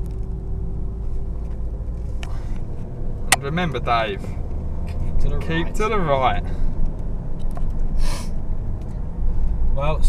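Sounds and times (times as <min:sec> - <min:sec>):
car road and engine rumble: 0:00.0 - 0:10.0
short hiss: 0:08.0 - 0:08.4.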